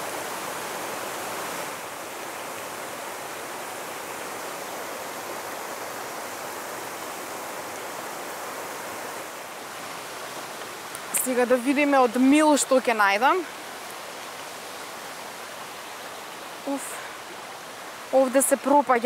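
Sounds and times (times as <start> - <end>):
river rushing over stones: 0.0 - 19.0.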